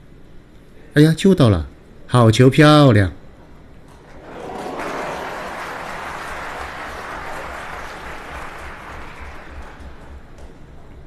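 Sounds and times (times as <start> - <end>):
audience applauding: 4.1 - 10.7.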